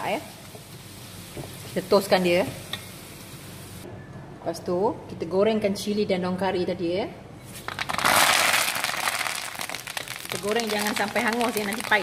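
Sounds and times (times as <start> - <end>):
oil crackling and sizzling: 0.0 - 3.8, 7.6 - 12.0.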